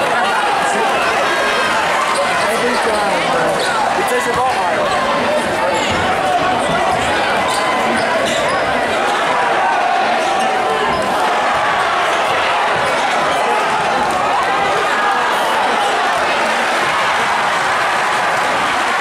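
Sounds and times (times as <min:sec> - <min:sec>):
crowd voices babbling: 0:00.0 - 0:19.0.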